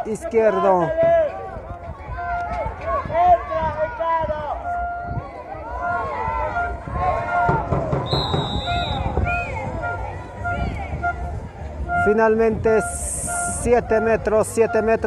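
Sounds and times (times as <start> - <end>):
young voices shouting: 0.5 - 8.0
referee's whistle blast: 8.0 - 10.0.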